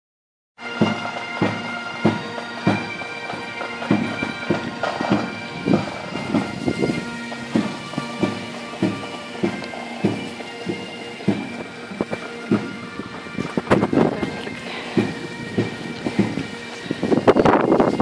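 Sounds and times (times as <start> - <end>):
bagpipes playing a march: 0.6 - 18.0
low drum beat: 0.8 - 18.0.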